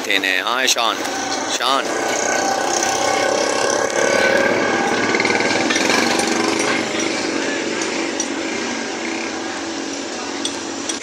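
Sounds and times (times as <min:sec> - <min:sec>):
vehicle engine rattling: 0:00.0 - 0:11.0.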